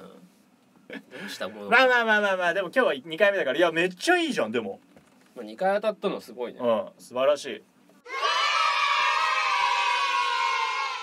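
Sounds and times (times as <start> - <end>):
group of voices cheering: 8.1 - 11.0.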